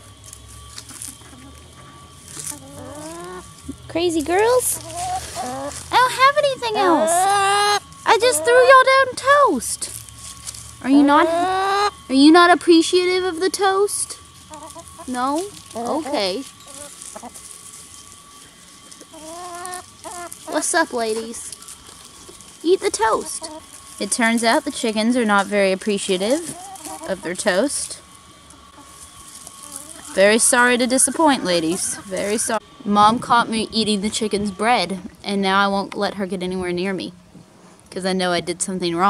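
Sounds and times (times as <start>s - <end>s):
hens foraging rustles: 0.0s - 39.0s
faint flock sounds: 0.5s - 9.5s, 10.2s - 12.2s, 13.3s - 35.0s
hen call: 4.5s - 9.5s, 10.8s - 12.2s, 18.9s - 21.6s
thin steady tone: 5.5s - 26.5s.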